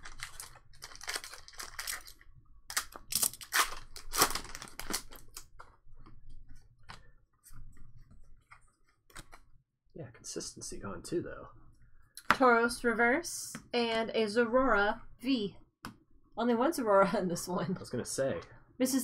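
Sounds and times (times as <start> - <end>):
foil wrapper tearing and crinkling: 0.0 - 5.5.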